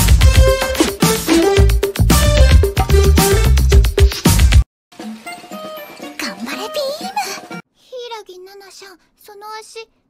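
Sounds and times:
girl speaking: 6.2 - 10.0.

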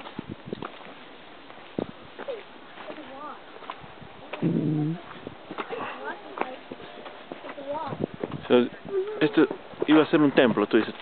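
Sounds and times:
people talking: 4.2 - 6.8.

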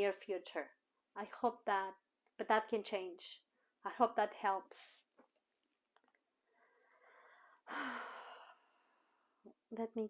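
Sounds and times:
woman inhaling: 6.5 - 9.4
woman sighing: 7.4 - 8.7.

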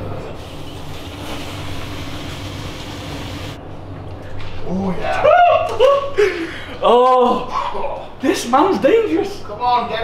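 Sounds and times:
water hissing on hot stones: 0.5 - 3.6.

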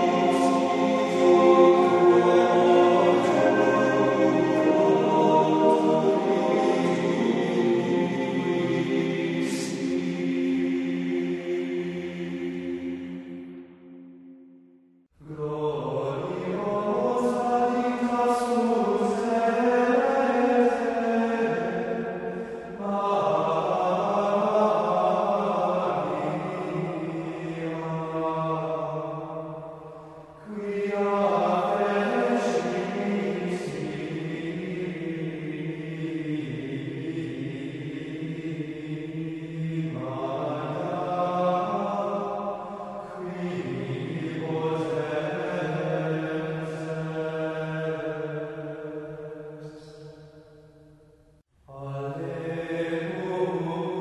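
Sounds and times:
voices singing sacred chant: 0.0 - 13.8, 15.2 - 50.7, 51.7 - 54.0.

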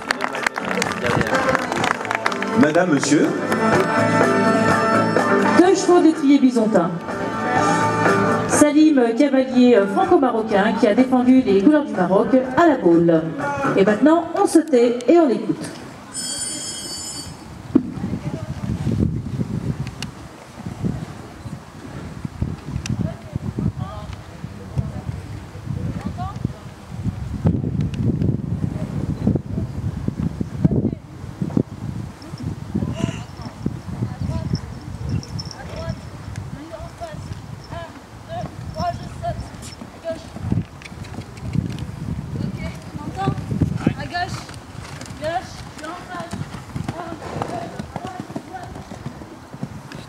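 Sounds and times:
low murmuring voices: 0.0 - 5.6
wind on microphone: 17.2 - 50.0
muffled hoofbeats on sand: 17.8 - 26.6, 31.4 - 50.0.

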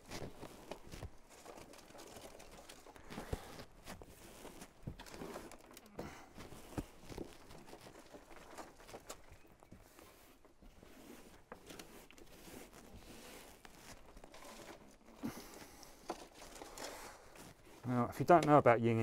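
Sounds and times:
compost rustling and crumbling: 0.0 - 19.0.

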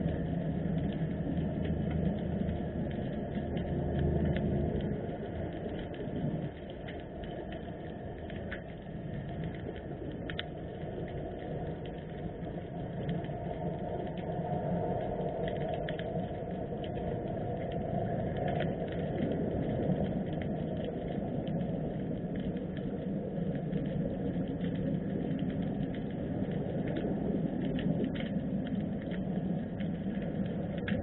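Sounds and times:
faint clicks and crackles: 0.0 - 31.0
underwater rumble: 0.0 - 31.0.

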